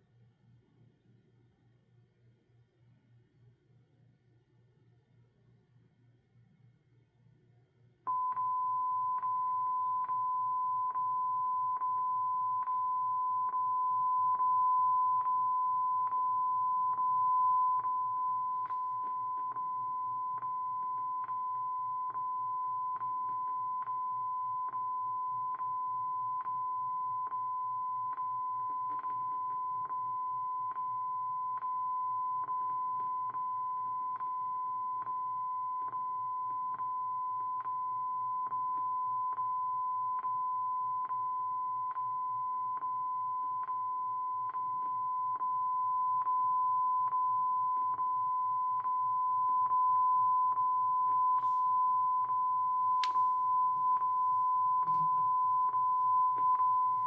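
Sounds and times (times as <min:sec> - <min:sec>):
steady test tone: 0:08.1 - 0:57.0
regular clicks: 0:51.4 - 0:57.0.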